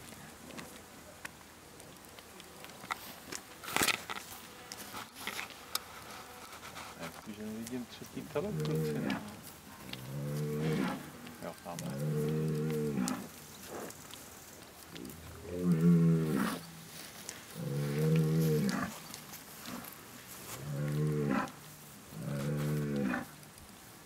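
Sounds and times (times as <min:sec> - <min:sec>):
cattle mooing: 0:08.4 - 0:13.3, 0:15.1 - 0:16.6, 0:17.6 - 0:19.0, 0:20.5 - 0:21.6, 0:22.2 - 0:23.3.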